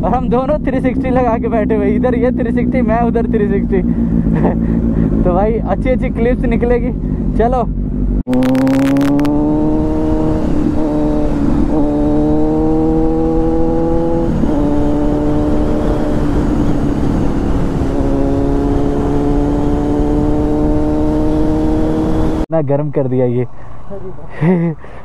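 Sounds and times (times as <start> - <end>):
motorcycle engine accelerating: 0.0 - 22.5.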